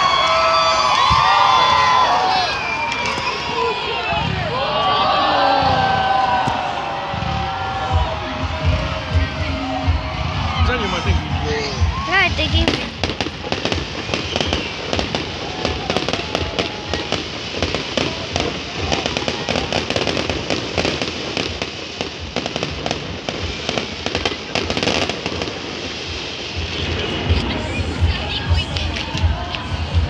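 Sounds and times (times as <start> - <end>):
fireworks popping and crackling: 0.0 - 30.0.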